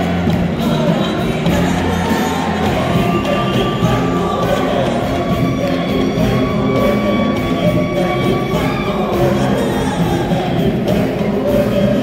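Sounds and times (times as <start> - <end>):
crowd cheering: 0.0 - 12.0
crowd singing along: 0.0 - 12.0
live pop concert music: 0.0 - 12.0
woman singing: 0.0 - 12.0.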